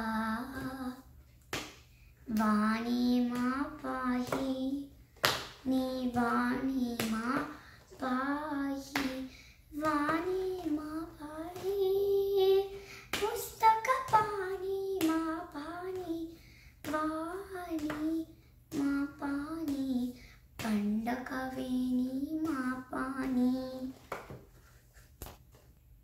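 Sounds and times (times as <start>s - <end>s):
girl singing a hymn unaccompanied: 0.0s - 1.2s, 2.2s - 24.0s.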